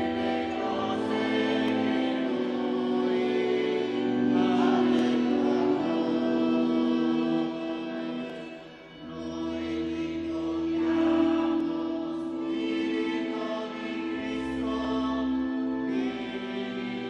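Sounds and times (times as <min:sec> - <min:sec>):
choir singing a hymn: 0:00.0 - 0:17.0.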